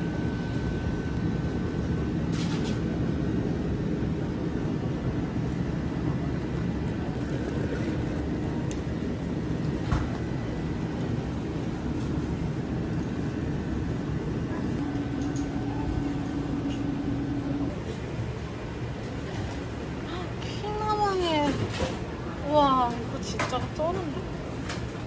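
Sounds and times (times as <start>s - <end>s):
low indoor rumble and hum: 0.0s - 25.0s.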